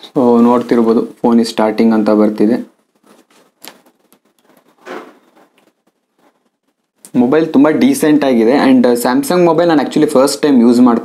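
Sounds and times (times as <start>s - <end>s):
faint handling rustles: 2.8s - 6.8s.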